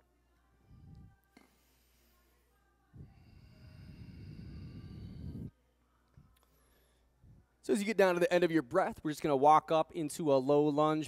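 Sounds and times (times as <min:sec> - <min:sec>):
faint background music: 0:00.0 - 0:11.0
breath blowing on microphone: 0:03.0 - 0:05.5.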